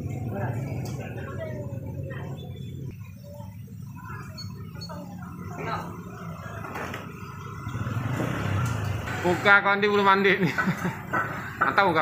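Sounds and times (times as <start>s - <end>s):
motorbike engine passing: 0.0s - 2.9s, 4.6s - 12.0s
busy market noise: 0.0s - 12.0s.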